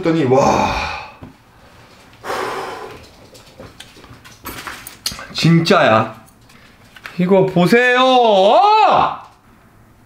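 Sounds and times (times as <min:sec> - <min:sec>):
man blowing out breath: 0:02.2 - 0:03.1.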